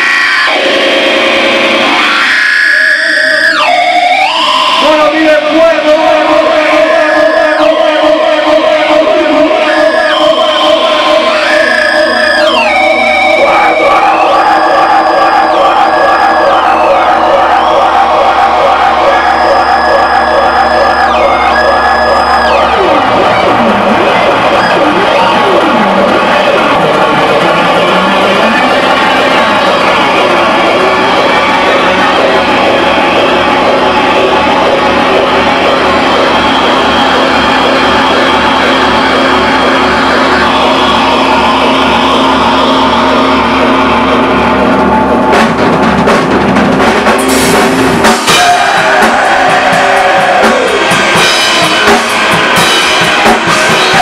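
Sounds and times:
distorted electric guitar: 0:00.0 - 0:54.0
drum hits: 0:43.1 - 0:54.0.

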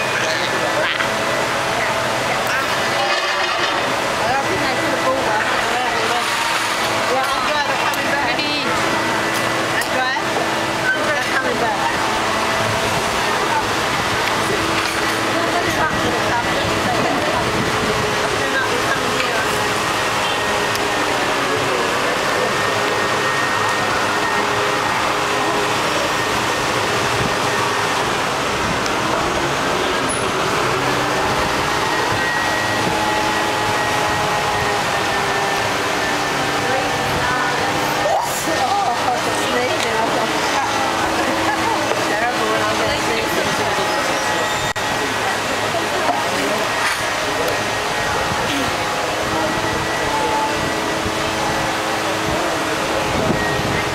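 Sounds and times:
indistinct chatter of voices: 0:00.0 - 0:53.9
street traffic noise: 0:00.0 - 0:53.9.

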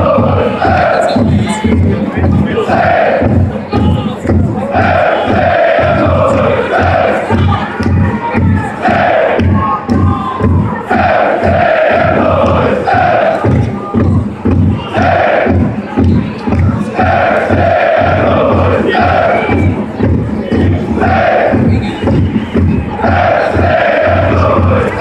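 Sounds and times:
crowd chanting in unison: 0:00.0 - 0:25.0
steady drum beat: 0:00.0 - 0:25.0.

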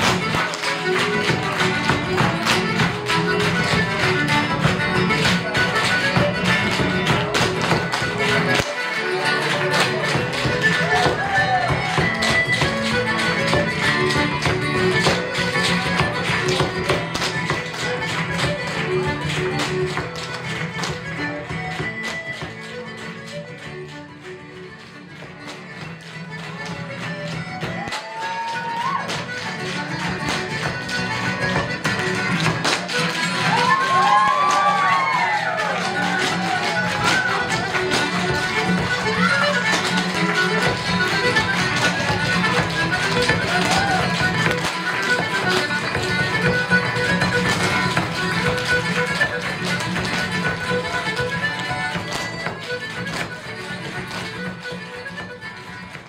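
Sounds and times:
folk dance music with guitars: 0:00.0 - 0:56.0.

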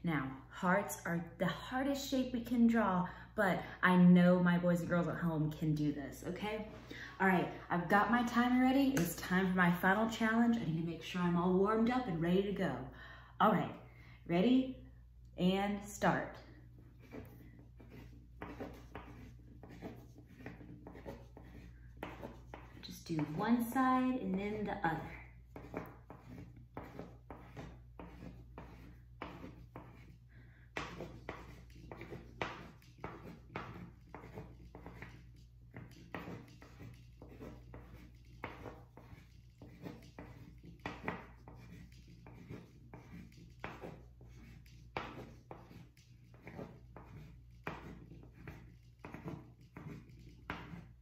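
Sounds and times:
pen scratching on paper: 0:17.0 - 0:51.0.

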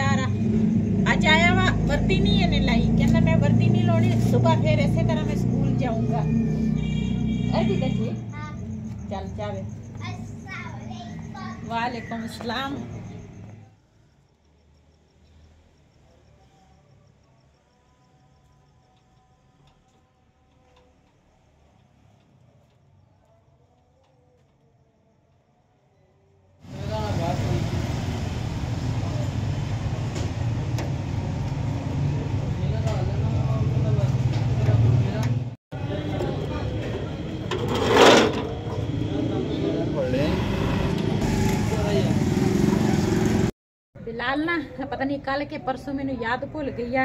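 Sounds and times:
voices: 0:00.0 - 0:13.7, 0:31.6 - 0:42.2.

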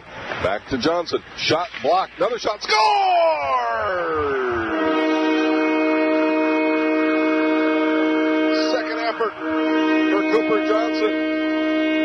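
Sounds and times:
arena goal horn: 0:03.8 - 0:12.0.

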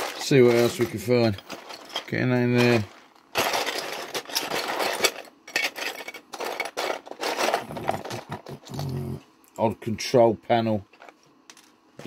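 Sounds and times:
plastic parts rattling in a box: 0:00.0 - 0:08.7.

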